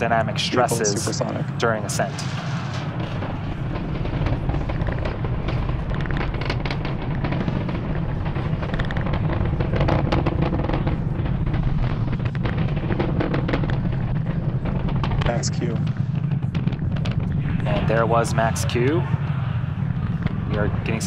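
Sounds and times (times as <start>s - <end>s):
rocket engines rumbling and crackling: 0.0s - 21.0s.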